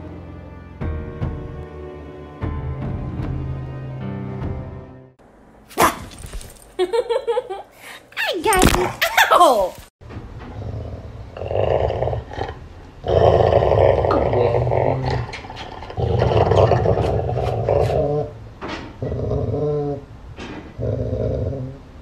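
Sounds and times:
dog growling playfully: 10.6 - 18.3.

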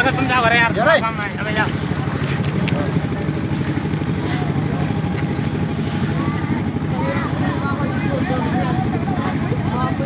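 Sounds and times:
engine running with low throb: 0.0 - 10.0
people chattering: 0.0 - 10.0.

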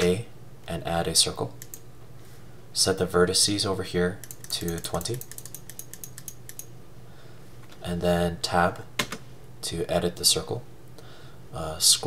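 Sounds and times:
computer mouse clicks: 1.6 - 1.8, 4.2 - 6.7.

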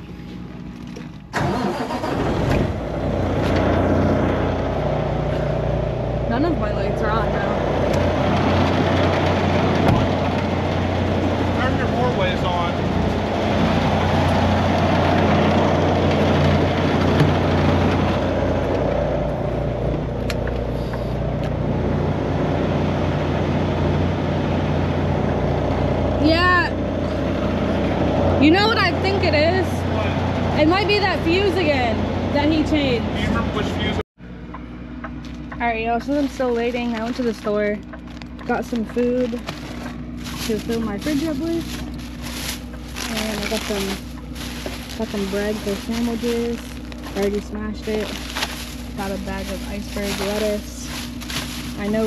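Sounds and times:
diesel engine idling: 0.0 - 52.0.

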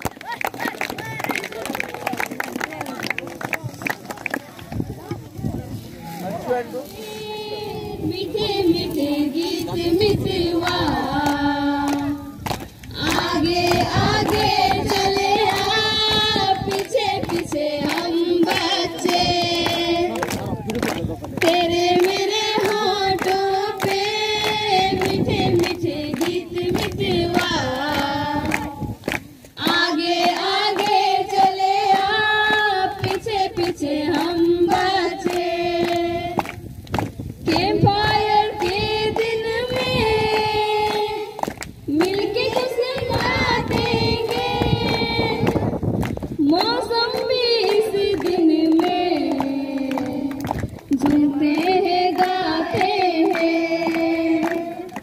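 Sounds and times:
young voices singing together: 6.8 - 20.6, 21.3 - 36.8, 37.4 - 55.0.

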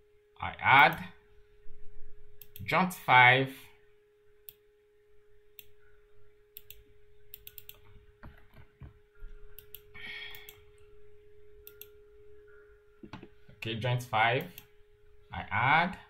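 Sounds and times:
faint steady hum: 0.0 - 16.0
computer mouse clicks: 2.4 - 2.7, 5.6 - 5.9, 6.5 - 8.9, 9.5 - 10.6, 11.6 - 13.3.

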